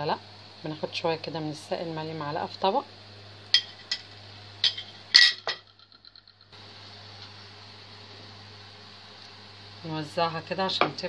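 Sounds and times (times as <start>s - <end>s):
steady low hum: 0.0s - 11.0s
metal spoon clinking on cookware: 3.6s - 5.6s.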